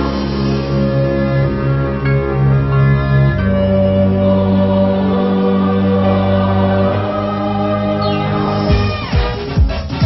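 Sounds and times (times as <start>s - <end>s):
film song music: 0.0s - 10.0s
choir holding chord: 0.6s - 8.9s.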